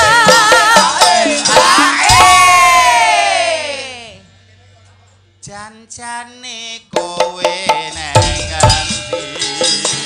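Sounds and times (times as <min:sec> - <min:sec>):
drum strikes: 0:00.0 - 0:03.1, 0:06.9 - 0:10.0.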